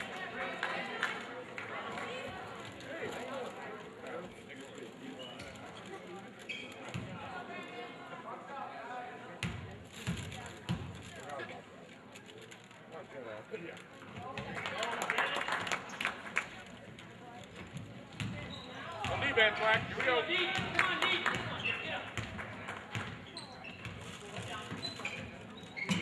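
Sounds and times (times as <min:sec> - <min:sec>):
spectators chatting: 0:00.0 - 0:26.0
crowd cheering and clapping: 0:14.6 - 0:16.4.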